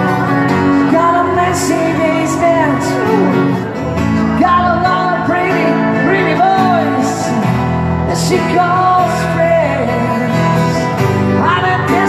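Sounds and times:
guitars playing: 0.0s - 12.0s.

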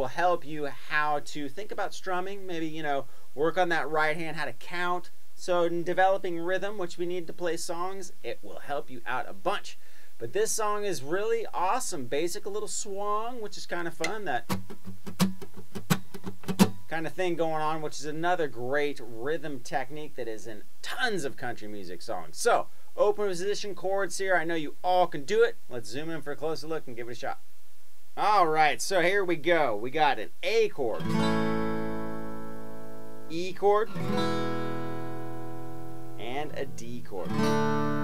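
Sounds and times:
acoustic guitar strummed: 14.0s - 17.0s, 31.0s - 38.0s.

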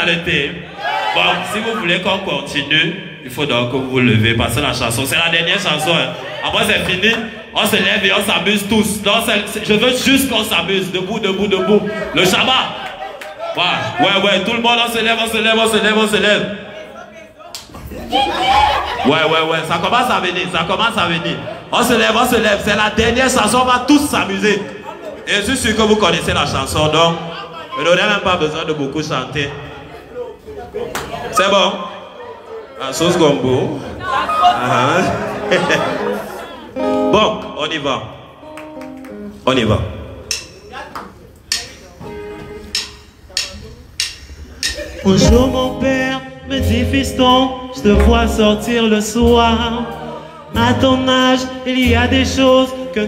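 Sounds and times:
held instrument notes: 36.7s - 37.8s, 42.0s - 44.1s, 45.0s - 52.6s
man calling out into microphone: 36.8s - 38.2s, 45.0s - 53.0s
percussion hits: 40.2s - 40.8s, 41.5s - 45.9s, 46.6s - 48.7s
live band with vocals: 42.0s - 53.0s.

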